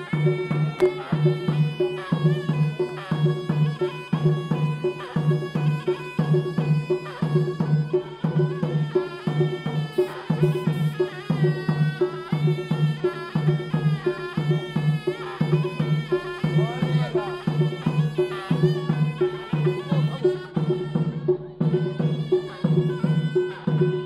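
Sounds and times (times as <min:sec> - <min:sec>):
reedy wind instrument melody: 0:00.0 - 0:24.0
steady drum beat: 0:00.0 - 0:24.0.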